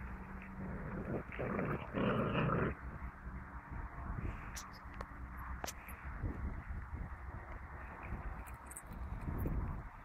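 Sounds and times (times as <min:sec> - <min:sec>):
puppies growling: 0:00.6 - 0:02.8.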